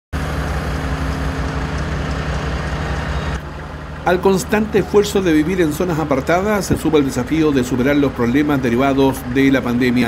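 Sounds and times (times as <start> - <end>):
engine humming: 0.1 - 10.0.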